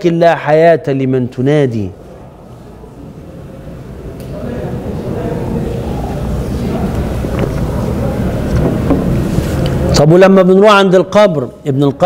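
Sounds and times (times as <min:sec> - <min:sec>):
microphone handling rumble: 0:06.9 - 0:09.7.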